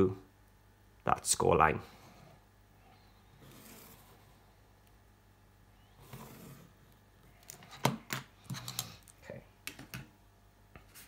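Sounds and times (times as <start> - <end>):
pencil scratching on card: 3.3 - 4.4, 6.0 - 6.8.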